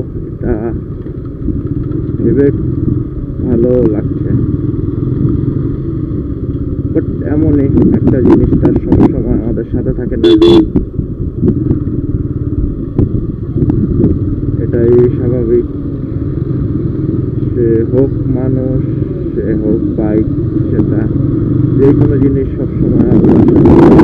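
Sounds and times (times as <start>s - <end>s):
motorcycle engine running: 0.0s - 24.0s
road noise: 0.0s - 24.0s.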